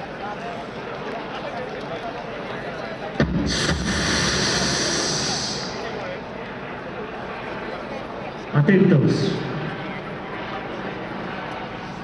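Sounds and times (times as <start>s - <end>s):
crowd chattering: 0.0s - 12.0s
loud rushing hiss: 3.2s - 6.1s.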